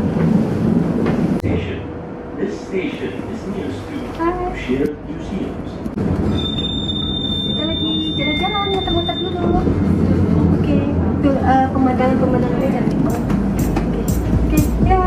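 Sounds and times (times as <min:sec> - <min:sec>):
tram rumbling: 0:00.0 - 0:15.0.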